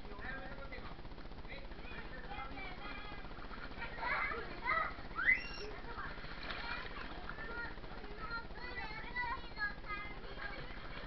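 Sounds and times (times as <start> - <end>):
children shouting: 4.0 - 5.8.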